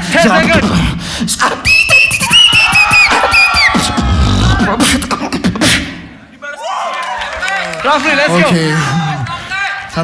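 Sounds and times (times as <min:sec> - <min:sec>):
beatboxing clicks and snare hits: 0:01.7 - 0:06.0.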